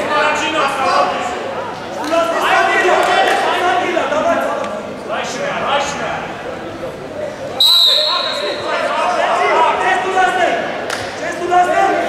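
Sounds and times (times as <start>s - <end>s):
referee whistle blast: 7.6s - 8.7s.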